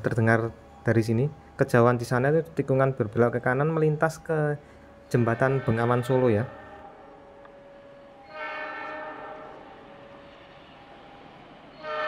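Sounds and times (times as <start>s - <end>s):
distant diesel locomotive horn: 4.6s - 11.0s, 11.7s - 12.0s.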